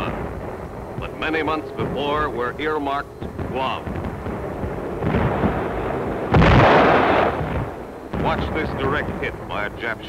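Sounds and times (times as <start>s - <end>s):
artillery shell explosions: 0.0s - 10.0s.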